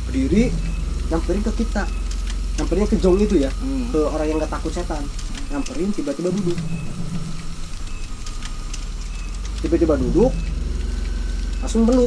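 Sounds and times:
low background hum: 0:00.0 - 0:12.0
faint ticks: 0:00.5 - 0:03.6, 0:04.3 - 0:12.0.

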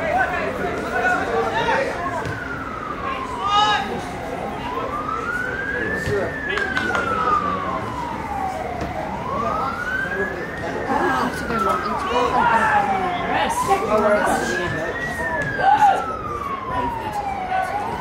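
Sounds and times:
emergency siren wailing: 0:00.0 - 0:18.0.

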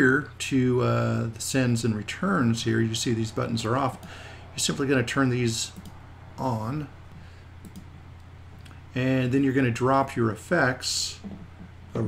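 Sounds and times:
low electrical hum: 0:00.0 - 0:12.0
computer mouse clicks: 0:05.8 - 0:06.0, 0:07.6 - 0:08.8.

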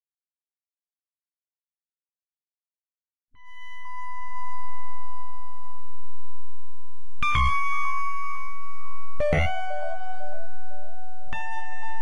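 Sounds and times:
held pure tone: 0:03.4 - 0:12.0.

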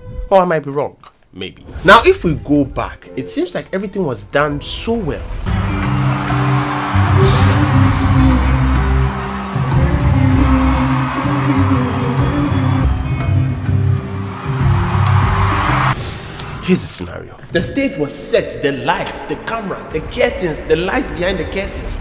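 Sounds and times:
heavy bass line: 0:05.5 - 0:16.0
loud live concert music: 0:05.5 - 0:16.0
crowd noise: 0:05.5 - 0:16.8.

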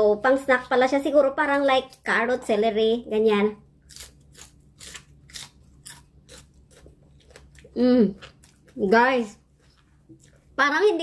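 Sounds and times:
pepper being bitten and chewed: 0:03.8 - 0:08.8.

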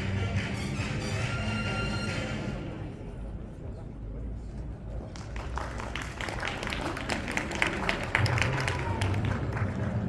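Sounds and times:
crowd voices: 0:00.0 - 0:10.0
audience clapping: 0:05.1 - 0:10.0.

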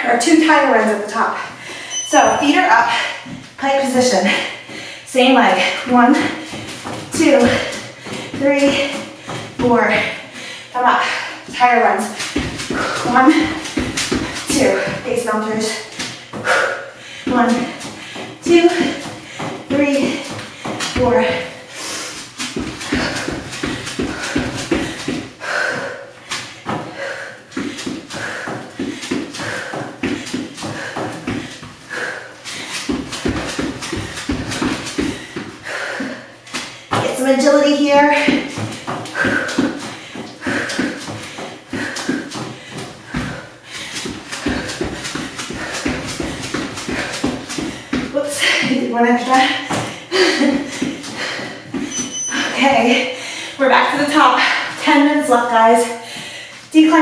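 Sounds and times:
sneaker footfalls on exercise mat: 0:00.4 - 0:57.0
person's voice: 0:48.2 - 0:49.6.

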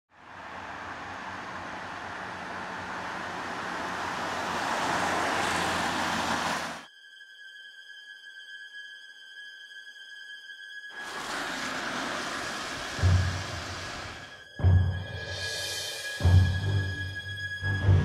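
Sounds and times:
car passing on wet road: 0:00.1 - 0:06.8, 0:11.0 - 0:16.5.

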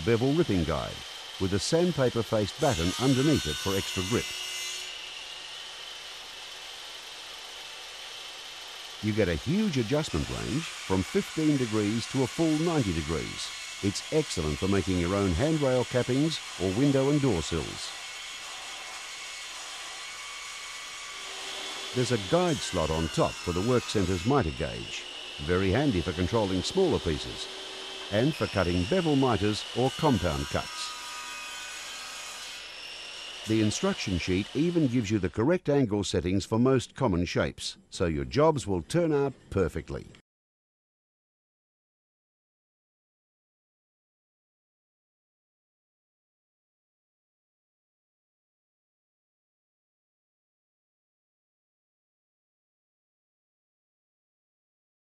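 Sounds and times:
circular saw running: 0:00.0 - 0:35.3.

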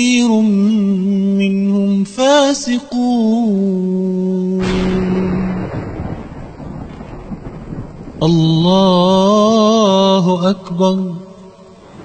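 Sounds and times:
wind-like rushing noise: 0:04.6 - 0:08.3, 0:11.7 - 0:12.0.

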